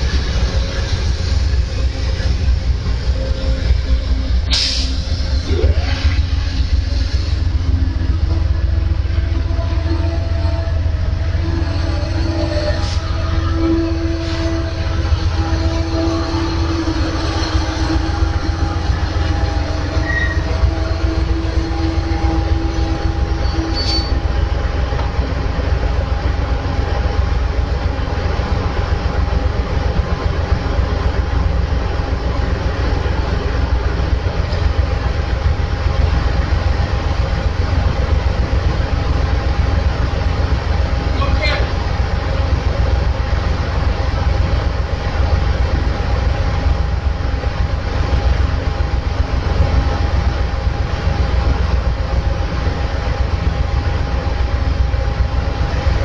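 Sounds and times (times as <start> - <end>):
low whine: 0.0 - 56.0
train rumbling to a stop: 0.0 - 56.0.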